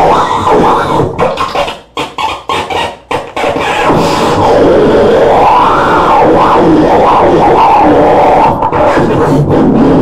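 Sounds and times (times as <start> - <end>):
experimental noise music: 0.0 - 10.0.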